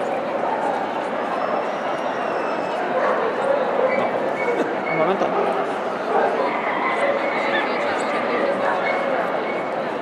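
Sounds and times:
indoor crowd babble: 0.0 - 10.0
dogs yipping and barking: 2.8 - 4.6, 5.4 - 9.8.

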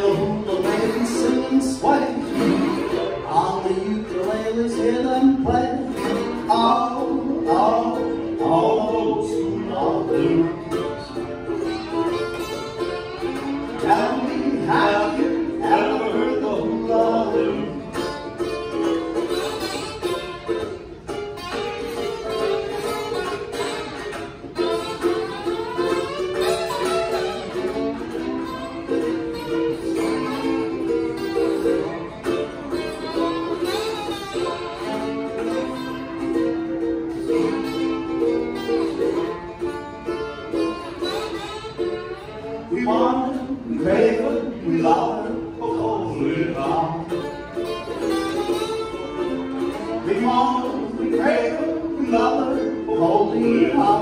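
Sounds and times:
ukulele strumming: 0.0 - 54.0
lap steel guitar sliding notes: 4.9 - 54.0.

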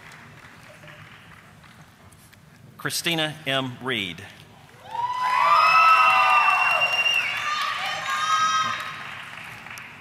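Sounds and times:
applause: 0.0 - 2.1, 4.8 - 10.0
audience cheering and whooping: 4.8 - 9.3.

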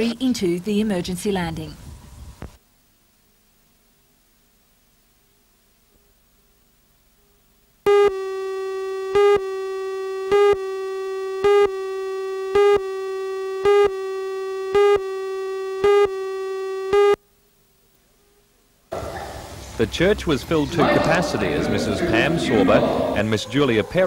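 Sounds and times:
buzzy electronic tone: 7.9 - 17.2
countdown pips: 7.9 - 17.2.

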